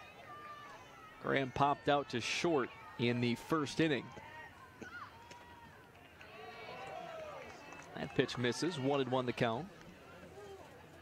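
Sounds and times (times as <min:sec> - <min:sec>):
outdoor hubbub: 0:00.0 - 0:11.0.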